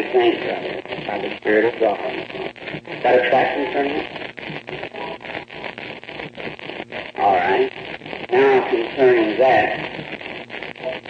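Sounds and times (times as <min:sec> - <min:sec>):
background hiss: 0:00.0 - 0:11.0
man preaching: 0:08.3 - 0:09.8.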